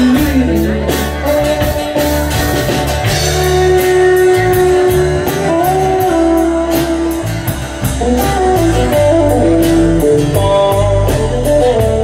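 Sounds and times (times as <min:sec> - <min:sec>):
bass and drums: 0:00.0 - 0:12.0
lead guitar melody: 0:00.0 - 0:12.0
strummed acoustic guitar: 0:00.0 - 0:12.0.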